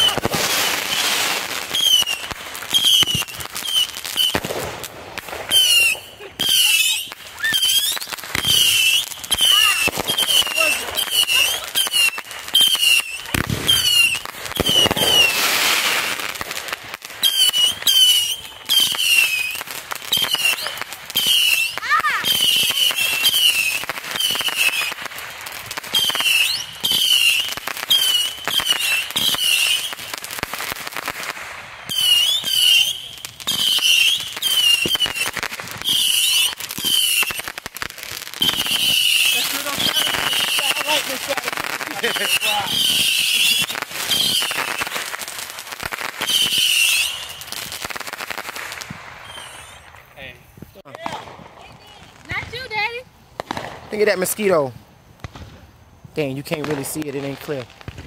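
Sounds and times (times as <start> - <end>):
fireworks popping and crackling: 0.0 - 58.0.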